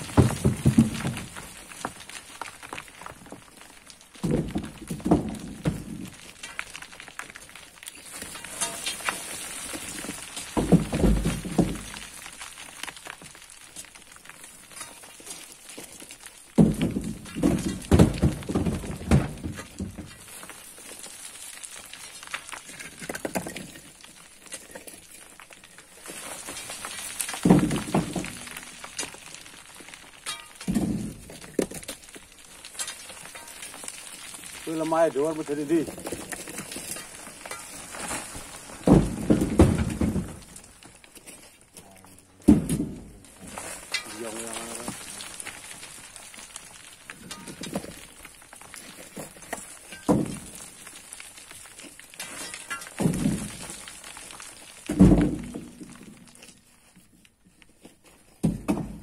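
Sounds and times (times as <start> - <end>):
earth and stones sliding down: 0.0 - 59.0.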